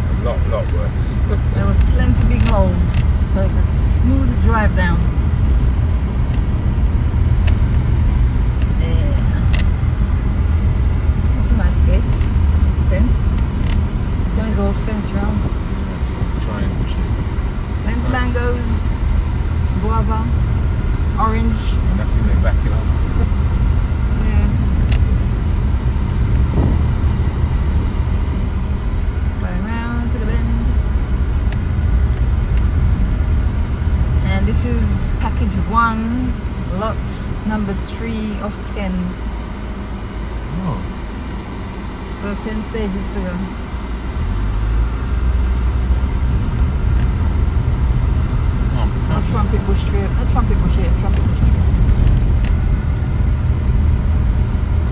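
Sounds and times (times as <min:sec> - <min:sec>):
car engine and tyres rumbling: 0:00.0 - 0:54.9.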